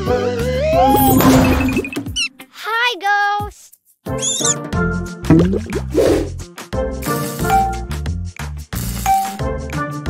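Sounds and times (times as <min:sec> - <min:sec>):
cartoon character squeak: 0:04.2 - 0:04.6.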